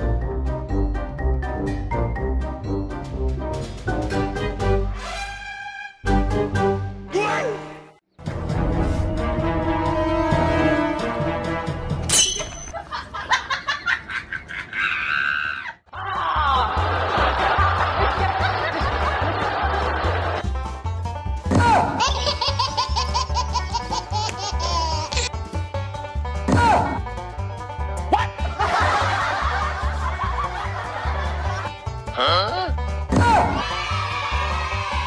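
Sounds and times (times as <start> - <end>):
people laughing and cheering: 12.8 - 20.4, 28.2 - 31.9, 33.2 - 35.0.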